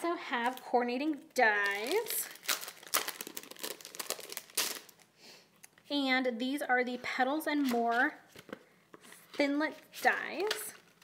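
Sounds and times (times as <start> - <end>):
plastic package crinkling: 1.5 - 5.1.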